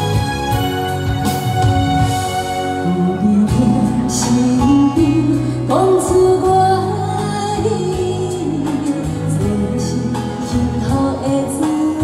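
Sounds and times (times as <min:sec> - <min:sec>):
backing track: 0:00.0 - 0:12.0
woman singing into microphone: 0:02.8 - 0:12.0.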